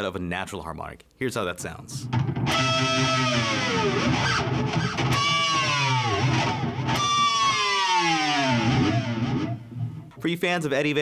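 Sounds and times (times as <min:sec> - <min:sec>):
distorted electric guitar dive bombs: 0:02.0 - 0:10.2.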